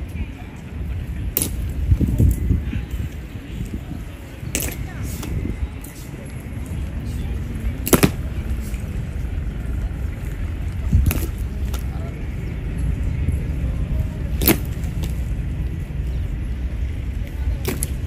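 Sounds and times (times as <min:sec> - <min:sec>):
steady low rumble: 0:00.0 - 0:18.0
boots clacking on stone: 0:07.8 - 0:08.3.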